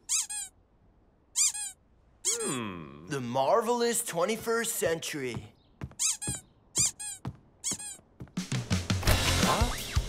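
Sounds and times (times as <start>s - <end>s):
squeaky toy squeaking: 0.0s - 0.6s, 1.3s - 2.4s, 5.9s - 8.2s.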